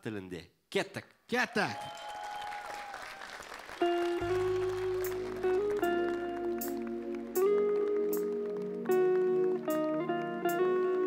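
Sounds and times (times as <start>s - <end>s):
audience applause: 1.6s - 11.0s
live band playing: 3.8s - 11.0s.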